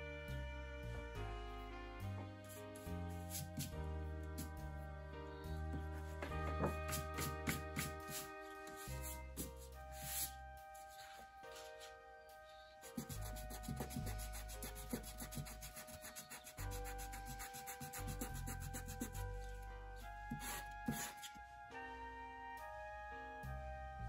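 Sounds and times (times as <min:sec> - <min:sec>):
background music: 0:00.0 - 0:24.0
eraser rubbing on paper: 0:02.5 - 0:03.7, 0:06.6 - 0:11.7, 0:12.8 - 0:19.5, 0:20.3 - 0:21.4.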